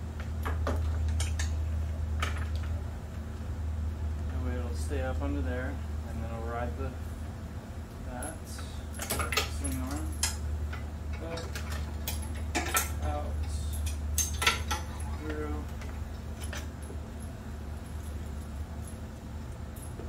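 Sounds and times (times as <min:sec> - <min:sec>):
steady low hum: 0:00.0 - 0:20.0
metallic clicks and rattles: 0:08.6 - 0:16.9.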